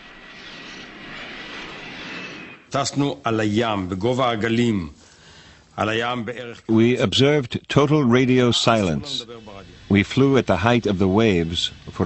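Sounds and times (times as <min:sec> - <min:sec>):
jet aircraft rushing: 0:00.0 - 0:03.9.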